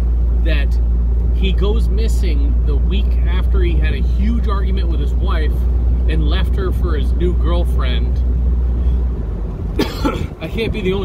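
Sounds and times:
car cabin engine rumble: 0:00.0 - 0:11.0
man coughing: 0:09.8 - 0:10.4.

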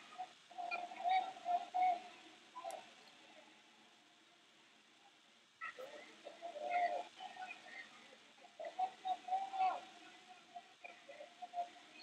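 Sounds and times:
distant shouted calls: 0:00.0 - 0:04.1, 0:05.0 - 0:12.0.

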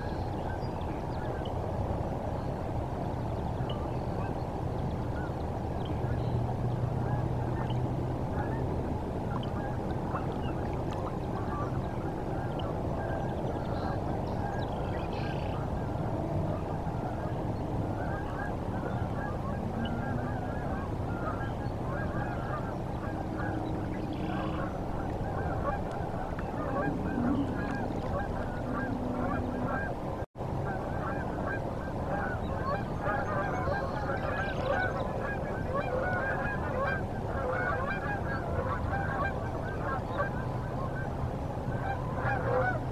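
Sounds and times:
flock of waterfowl honking: 0:03.4 - 0:42.9.

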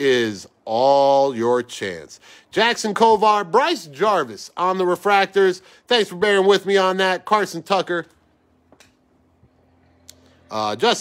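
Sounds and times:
faint low hum: 0:06.8 - 0:11.0.

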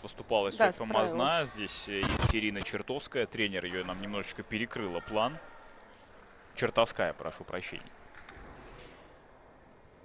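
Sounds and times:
sports hall background noise: 0:00.0 - 0:10.0.

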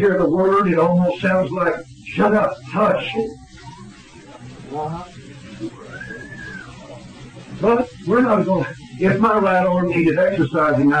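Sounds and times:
low recording hum: 0:00.0 - 0:11.0.

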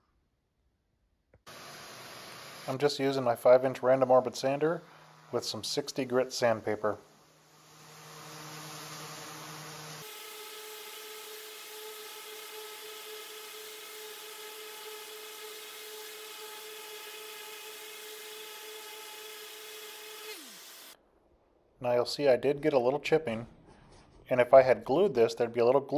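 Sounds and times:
orbital sander whining: 0:01.5 - 0:21.0.

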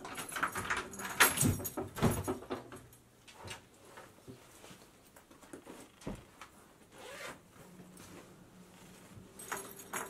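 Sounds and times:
clothes rustling: 0:03.2 - 0:10.0.

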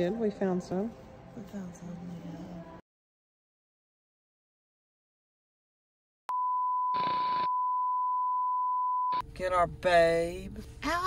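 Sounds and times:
steady test tone beep: 0:06.3 - 0:09.2
burst of static noise: 0:06.9 - 0:07.5.

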